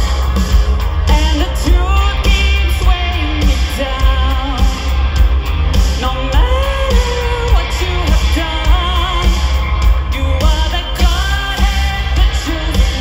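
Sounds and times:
rock band playing: 0.0s - 13.0s
woman singing lead: 1.0s - 5.2s, 5.9s - 13.0s.

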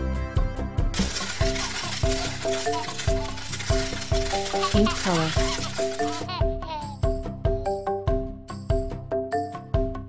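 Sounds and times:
background music with beat: 0.0s - 2.4s, 3.1s - 10.0s
small balls clattering: 1.0s - 6.3s.

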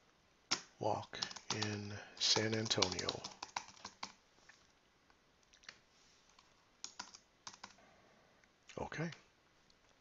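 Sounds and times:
computer keyboard typing: 0.5s - 4.2s, 6.4s - 7.8s.

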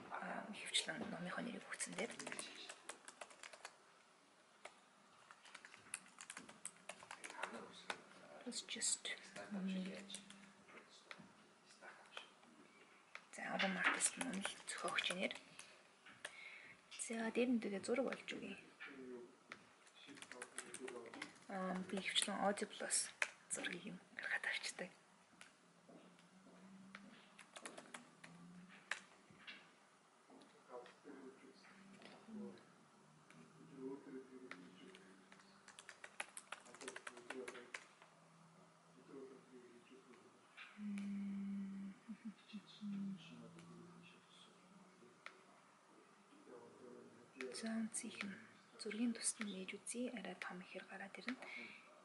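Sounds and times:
woman speaking quietly: 0.0s - 2.8s, 7.5s - 10.5s, 13.3s - 15.4s, 16.9s - 18.7s, 21.5s - 25.0s, 40.8s - 43.8s, 47.4s - 51.5s.

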